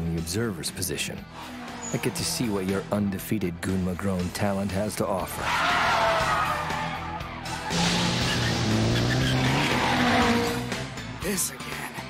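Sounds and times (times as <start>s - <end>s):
background music: 0.0s - 12.0s
car engine revving: 1.2s - 3.1s, 7.6s - 11.2s
tyres squealing: 1.4s - 2.8s, 5.3s - 10.7s.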